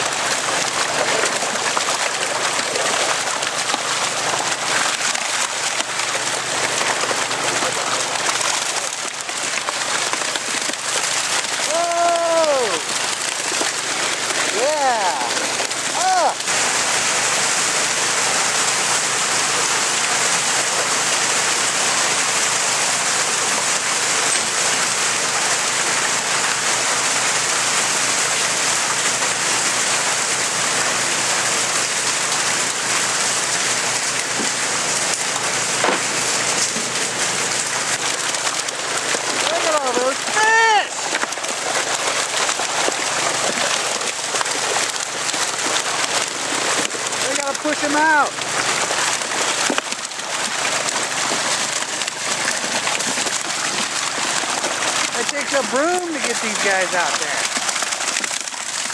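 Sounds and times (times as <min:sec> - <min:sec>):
water rushing down a chute: 0:00.0 - 0:58.9.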